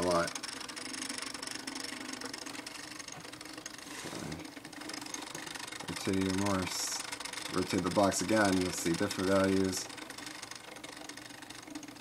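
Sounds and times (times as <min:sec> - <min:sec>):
stepper motor humming: 0:00.0 - 0:12.0.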